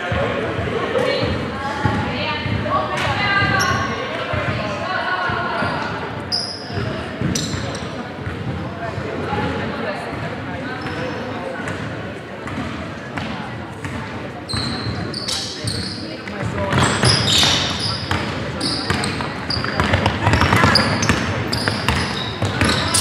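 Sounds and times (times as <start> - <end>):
players' indistinct calls: 0.0 - 23.0
shoe squeaks: 3.5 - 4.0, 5.6 - 8.0, 10.8 - 11.2, 14.5 - 16.2, 16.8 - 23.0
basketball bouncing on hardwood: 19.6 - 22.9.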